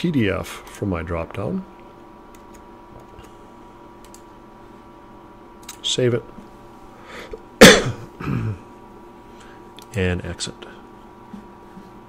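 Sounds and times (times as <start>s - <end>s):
person clearing throat: 7.6s - 8.7s.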